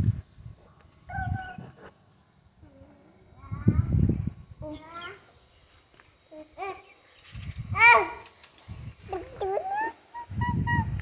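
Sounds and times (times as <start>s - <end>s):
high-pitched voice-like calls: 9.2s - 11.0s.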